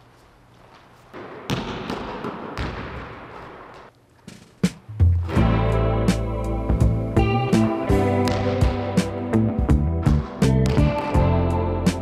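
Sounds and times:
basketball bouncing on hardwood floor: 1.2 - 3.9, 10.6 - 11.2.

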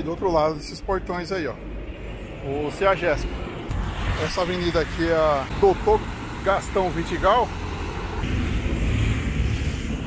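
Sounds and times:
car and bus engines running: 0.0 - 10.0
tyres hissing on wet road: 3.7 - 10.0.

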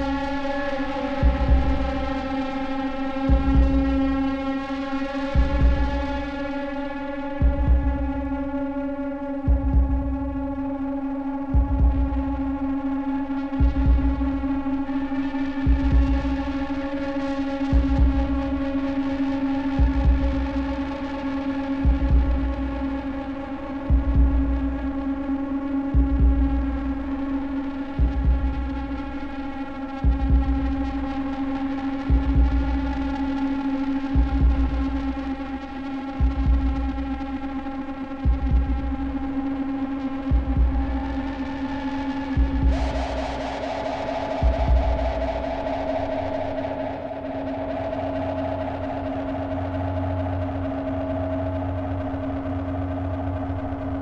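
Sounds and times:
droning electronic chord: 0.0 - 54.0
deep low pulse: 11.5 - 12.7, 13.6 - 14.7, 30.0 - 31.2, 34.0 - 37.4, 38.2 - 39.5, 40.1 - 54.0.

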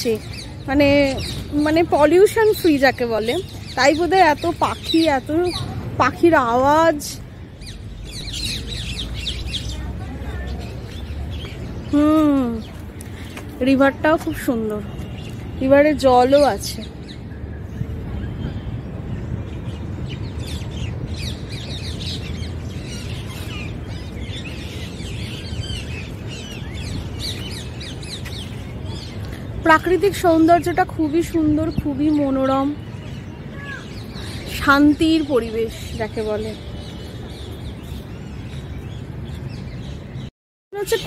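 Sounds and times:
small birds chirping: 0.0 - 41.0.

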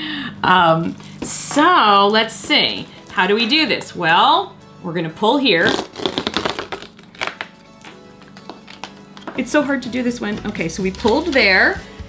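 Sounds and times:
cardboard tab tearing: 5.6 - 8.9
cardboard crackling: 5.6 - 9.3.

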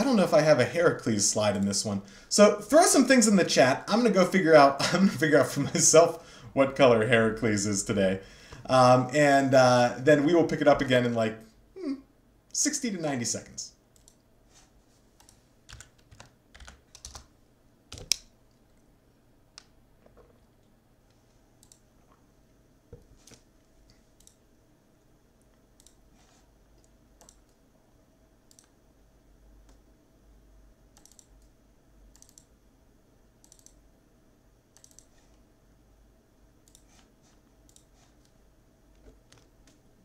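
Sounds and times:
faint low hum: 0.0 - 40.0
computer keyboard typing: 15.2 - 17.3, 17.9 - 18.3, 31.0 - 31.5, 32.2 - 32.5, 33.4 - 33.8, 34.8 - 35.2, 36.6 - 37.1.

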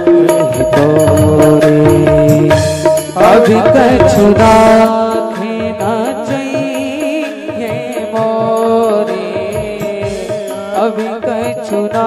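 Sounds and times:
hand drum beats: 0.0 - 12.0
harmonium chords: 0.0 - 12.0
man singing: 0.0 - 12.0.

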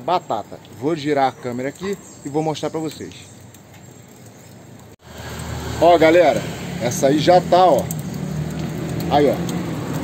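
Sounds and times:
low street background: 0.0 - 10.0
road traffic noise: 0.0 - 10.0.

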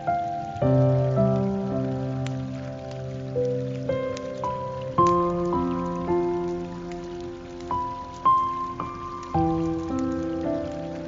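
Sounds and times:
water hissing: 0.0 - 11.0.

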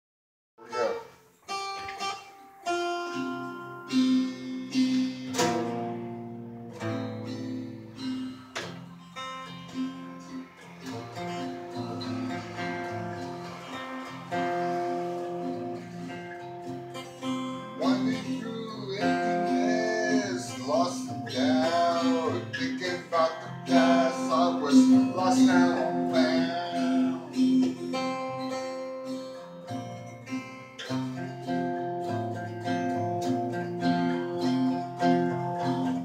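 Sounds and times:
two acoustic guitars playing: 0.6 - 36.0.

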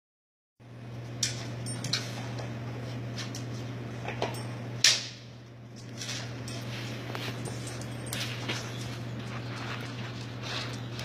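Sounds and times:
steady low hum: 0.6 - 11.0.

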